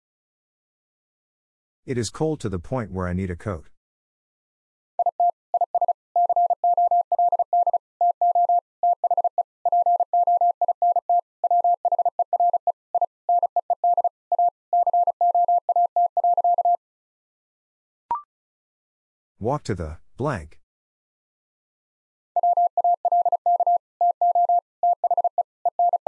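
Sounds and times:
morse code tone: 5.0s - 16.8s, 22.4s - 26.0s.

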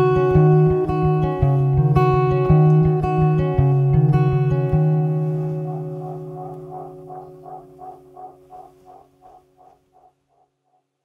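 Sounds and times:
acoustic guitar chord ringing: 0.0s - 9.6s.

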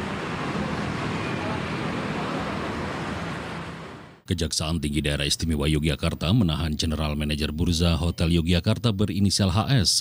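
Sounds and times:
rushing street ambience: 0.0s - 4.3s.

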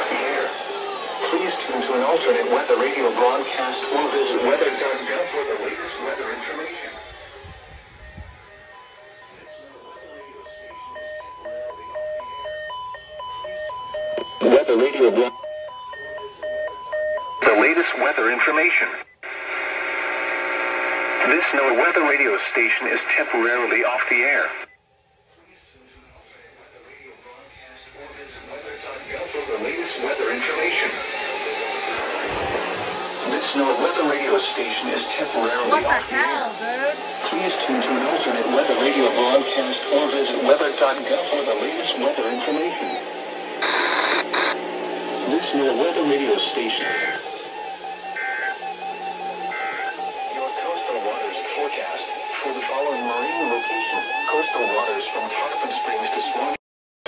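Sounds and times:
radio speaker hiss: 0.0s - 10.6s, 14.2s - 15.3s, 17.4s - 24.7s, 25.4s - 56.6s
steady pulsing tone: 0.0s - 17.4s
two-tone data screech: 2.7s - 19.1s, 30.3s - 44.6s, 45.4s - 56.5s.

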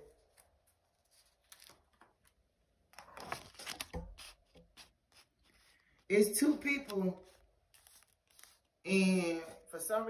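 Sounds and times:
hand rubbing cards: 3.4s - 8.8s.

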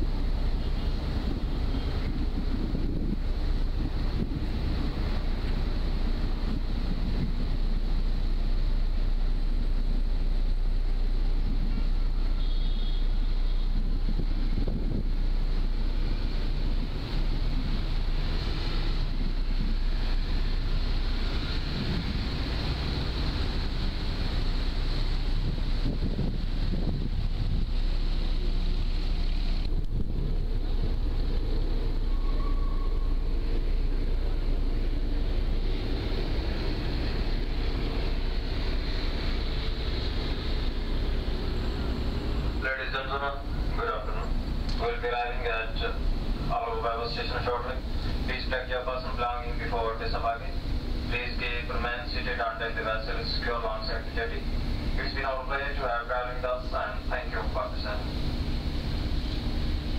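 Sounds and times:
wind buffeting microphone: 0.0s - 12.4s, 13.1s - 42.6s
ferry engines rumbling: 0.0s - 59.9s.

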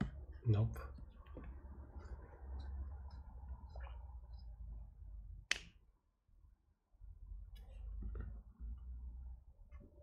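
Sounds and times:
finger snap: 5.4s - 5.8s.

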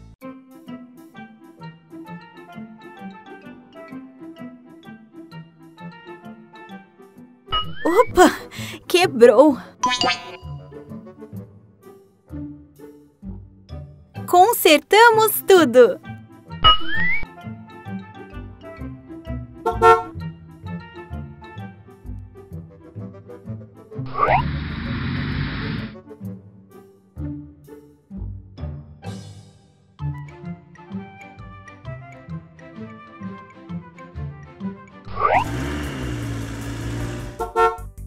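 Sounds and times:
light children's music: 0.0s - 24.2s, 26.0s - 35.4s
rising whistle sound effect: 16.6s - 17.2s, 24.1s - 26.0s
low engine hum: 35.1s - 37.6s.

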